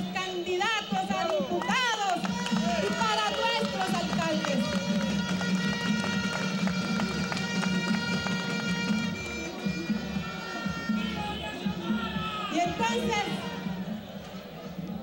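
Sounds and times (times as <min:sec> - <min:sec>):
crowd noise: 0:00.0 - 0:15.0
sustained wind instrument tones: 0:04.6 - 0:12.3.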